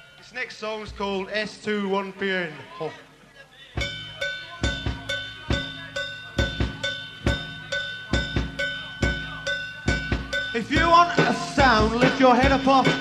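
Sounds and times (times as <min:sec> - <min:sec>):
drum kit steady beat: 0:03.8 - 0:13.0
high metallic ringing tone: 0:03.8 - 0:13.0.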